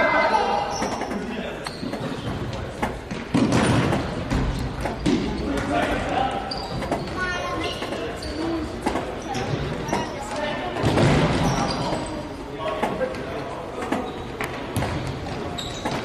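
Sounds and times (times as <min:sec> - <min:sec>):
shoes squeaking on court: 0:00.6 - 0:12.3, 0:13.8 - 0:16.0.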